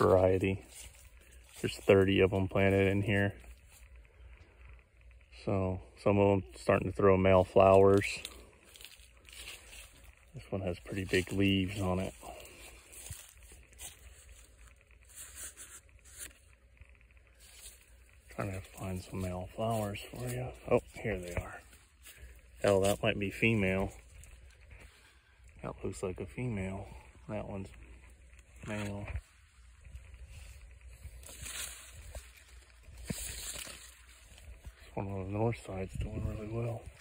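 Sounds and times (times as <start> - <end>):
leaves rustling and crunching: 0.0 - 4.0, 7.4 - 25.4, 27.0 - 37.0
soft scrapes: 12.9 - 17.8.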